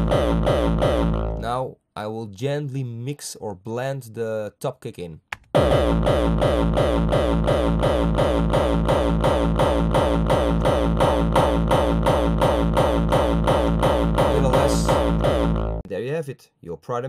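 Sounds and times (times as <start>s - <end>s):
punchy top kick: 0.0s - 1.4s, 5.6s - 15.8s
distorted kick drum loop: 0.0s - 1.5s, 5.6s - 15.9s.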